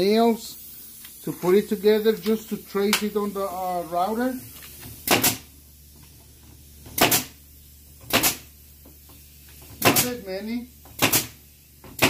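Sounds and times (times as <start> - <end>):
pneumatic nailer firing: 4.8 - 5.5, 6.8 - 7.4, 8.0 - 8.5, 9.6 - 10.2, 10.8 - 12.0.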